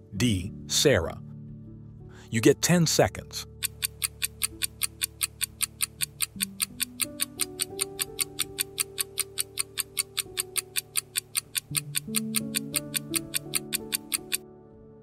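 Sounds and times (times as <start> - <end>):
soft background music chords: 0.0 - 15.0
countdown timer ticking: 3.4 - 14.4.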